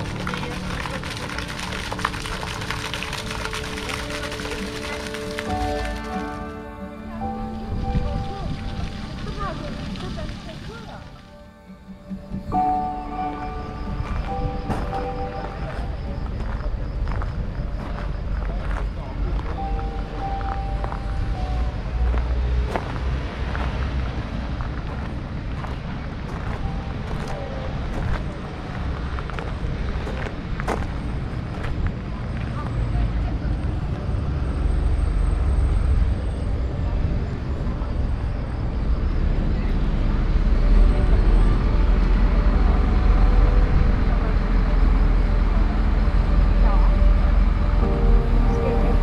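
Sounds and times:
road traffic rumble: 0.0s - 49.0s
people talking nearby: 6.9s - 11.4s.

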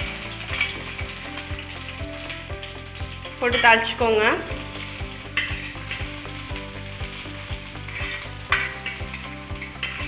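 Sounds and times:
shallots sizzling in hot oil: 0.0s - 10.0s.

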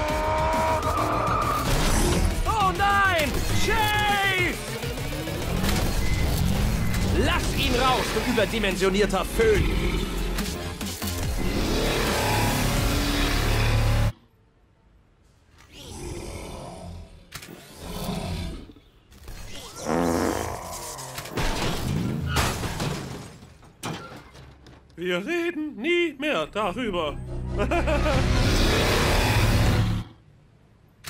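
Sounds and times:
dramatic music: 0.0s - 14.1s, 26.6s - 30.1s
growls: 11.4s - 14.1s, 15.6s - 21.4s, 28.4s - 30.2s
robot dinosaur roaring: 11.4s - 14.1s, 15.7s - 19.0s, 19.7s - 21.4s, 28.3s - 30.2s.

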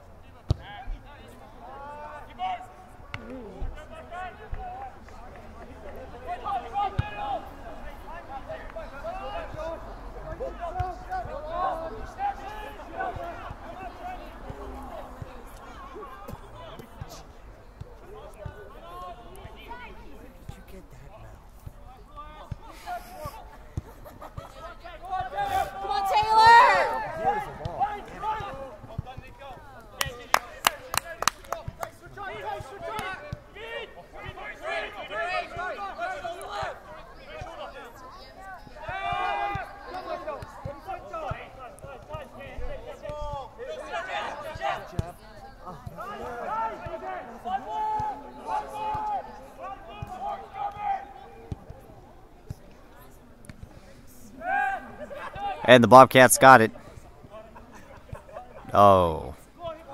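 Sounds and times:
voices shouting and calling: 22.3s - 29.0s.

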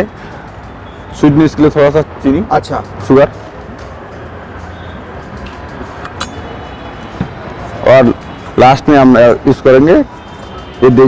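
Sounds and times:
sharp click: 5.4s - 6.4s.

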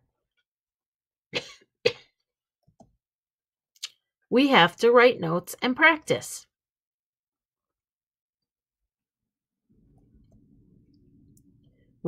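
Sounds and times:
person coughing: 1.4s - 2.2s.

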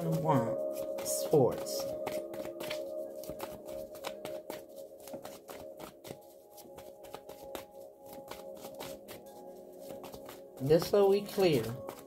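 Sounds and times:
background music held tone: 0.0s - 12.0s
cards being shuffled: 0.1s - 12.0s.

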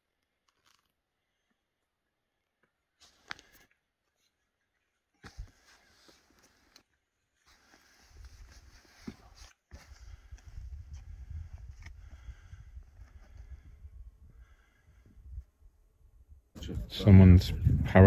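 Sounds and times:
wind rumbling on microphone: 9.9s - 18.0s.

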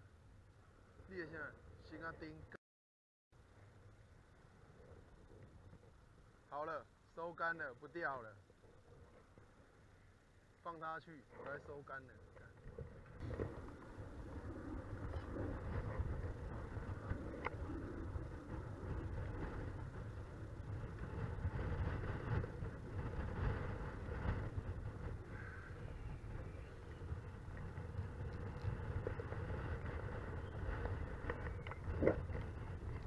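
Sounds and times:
wind buffeting microphone: 11.2s - 33.0s.

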